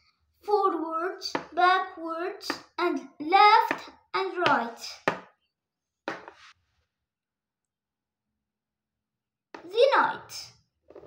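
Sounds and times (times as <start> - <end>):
chess piece knocking on board: 5.0 - 5.4, 6.1 - 6.5.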